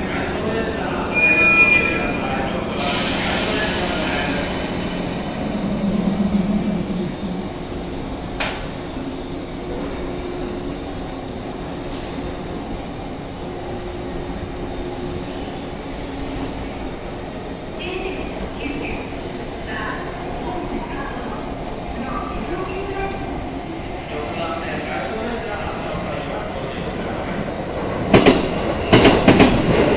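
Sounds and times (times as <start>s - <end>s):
train running gear humming: 2.0s - 29.9s.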